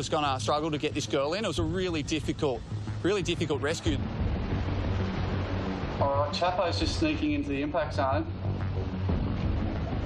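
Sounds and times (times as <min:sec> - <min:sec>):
low music drone: 0:00.0 - 0:10.0
ocean surf breaking: 0:01.7 - 0:08.0.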